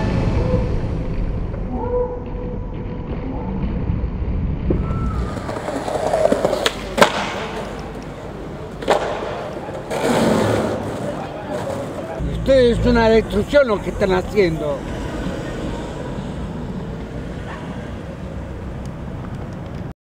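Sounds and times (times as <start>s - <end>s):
skateboard wheels rolling on tiles: 4.7s - 12.2s
skateboard clacking on ground: 5.1s - 12.2s.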